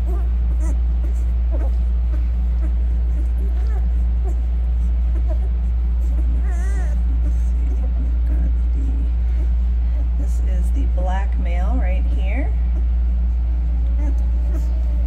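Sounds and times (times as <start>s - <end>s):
puppy whimper: 0.0s - 10.8s, 12.1s - 15.0s
loud steady low hum: 0.0s - 15.0s
puppies squeaking and grunting: 0.0s - 15.0s.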